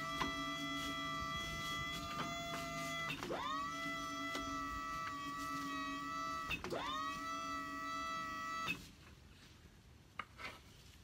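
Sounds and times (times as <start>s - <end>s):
loader motor whining: 0.0s - 8.9s.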